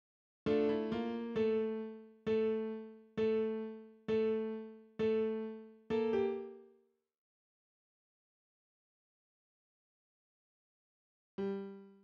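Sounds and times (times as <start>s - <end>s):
piano melody: 0.5s - 6.6s.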